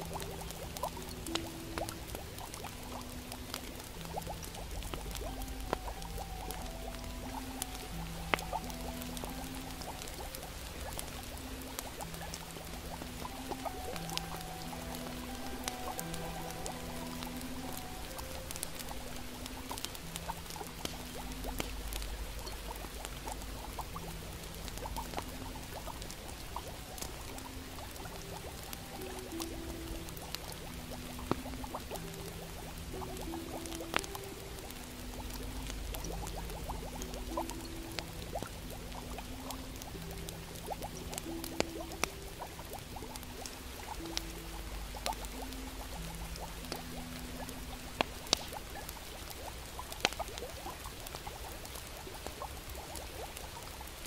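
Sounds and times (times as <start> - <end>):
cauldron bubbling: 0.0 - 54.0
crackling fire with pops: 0.0 - 54.0
soft slow music: 0.0 - 54.0.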